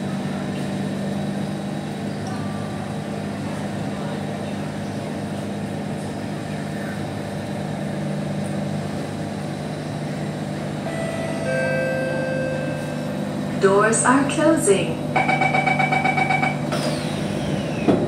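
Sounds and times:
train equipment hum: 0.0s - 18.0s
steady tones: 10.8s - 16.8s.

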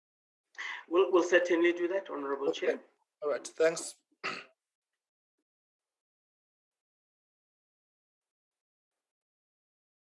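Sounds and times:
person clearing throat: 4.2s - 4.6s.

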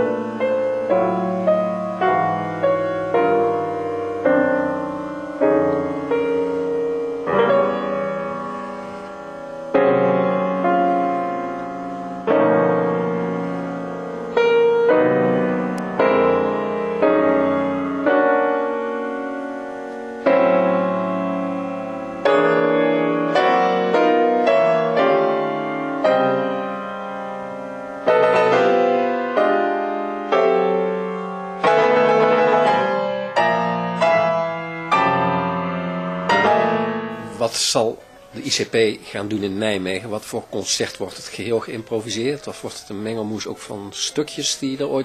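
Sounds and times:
piano chords ringing: 0.0s - 45.0s.

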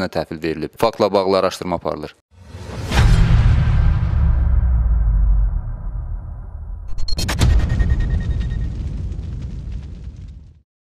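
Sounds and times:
sharp explosive hit: 2.4s - 10.6s
deep rumble: 2.7s - 10.6s.

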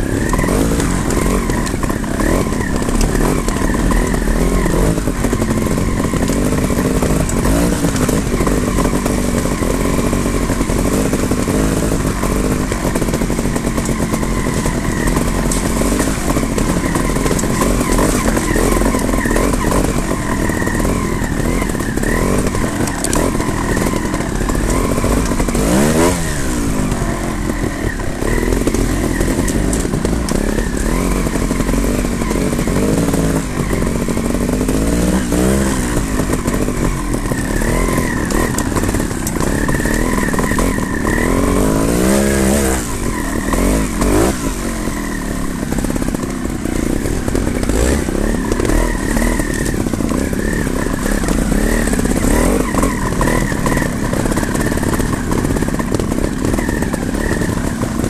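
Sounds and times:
engine throttle blips: 0.0s - 58.0s
motorcycle engines at low speed: 0.0s - 58.0s.

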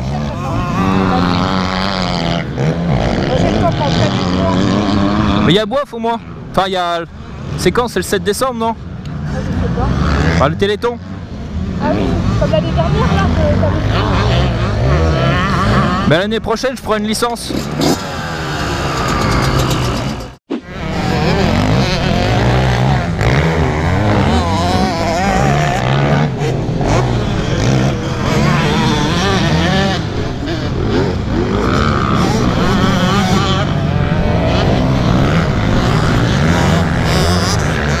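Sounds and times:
dirt bike engines revving: 0.0s - 38.0s.

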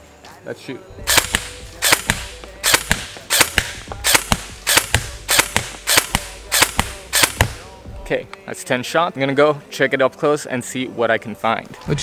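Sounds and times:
airsoft rifle shots: 1.0s - 7.7s.

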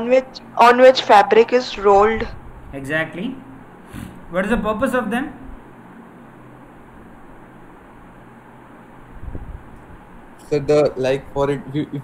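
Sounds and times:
microphone hiss and hum: 0.0s - 12.0s.

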